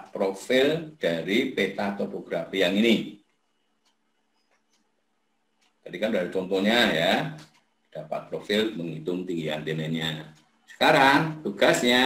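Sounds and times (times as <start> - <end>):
man's voice: 8.0 - 12.0.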